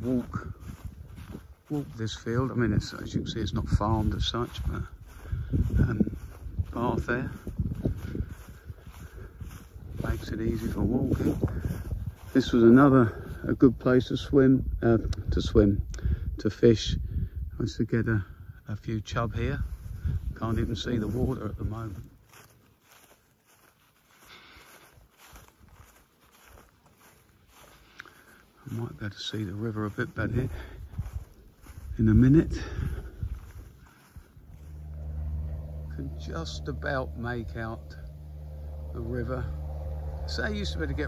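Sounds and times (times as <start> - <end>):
footsteps on grass: 0.0 - 14.5, 19.0 - 41.0
wind rumbling on microphone: 0.0 - 23.0, 28.7 - 41.0.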